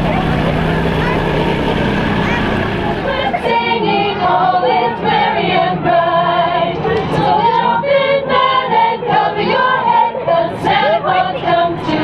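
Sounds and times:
choir singing a carol: 0.6 - 12.0.

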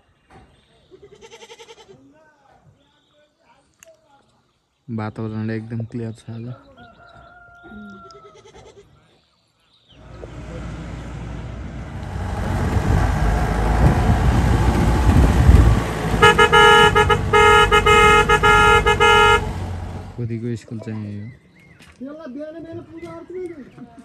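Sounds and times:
vehicle on dirt road: 10.0 - 20.4
vehicle horn honking: 12.0 - 20.2.

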